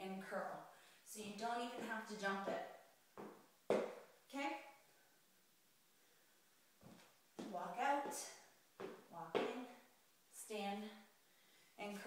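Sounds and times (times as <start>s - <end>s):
soft scuff: 6.8s - 7.5s.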